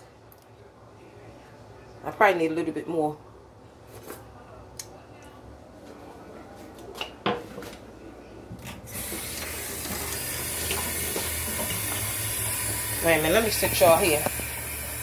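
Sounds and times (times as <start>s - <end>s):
water running into steel sink: 8.9s - 15.0s.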